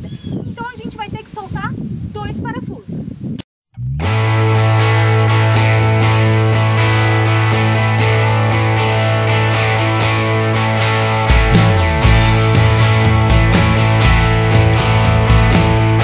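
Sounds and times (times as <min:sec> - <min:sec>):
distorted electric guitar chord: 0:03.8 - 0:16.0.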